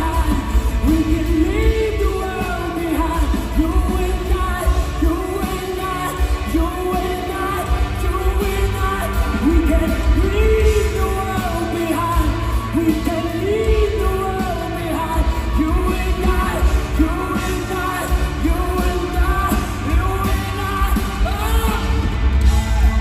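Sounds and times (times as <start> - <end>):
live rock band: 0.0 - 23.0
man singing: 0.0 - 23.0.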